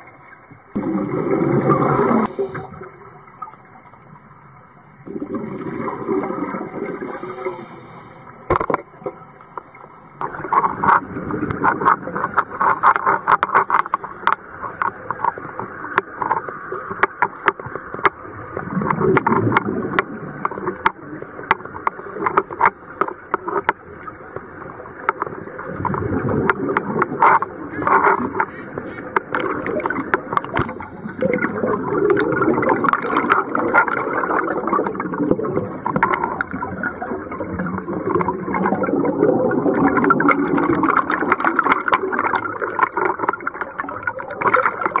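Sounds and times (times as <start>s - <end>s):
underwater exhaled bubbles gurgling: 0.0s - 45.0s
sharp clicks and crackles: 8.5s - 45.0s.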